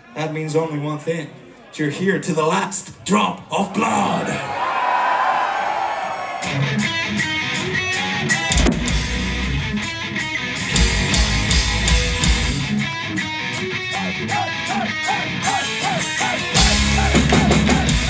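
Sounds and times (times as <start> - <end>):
distorted electric guitars: 6.4 - 18.0
heavy bass notes: 6.6 - 18.0.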